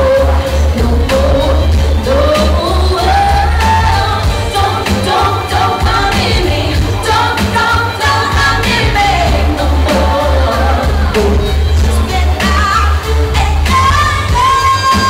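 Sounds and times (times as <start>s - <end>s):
pop backing music with drums: 0.0s - 15.0s
woman singing amplified: 0.0s - 15.0s.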